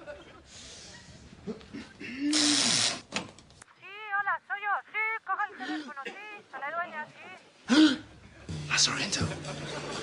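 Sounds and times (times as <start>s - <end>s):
person talking on telephone: 3.8s - 7.5s.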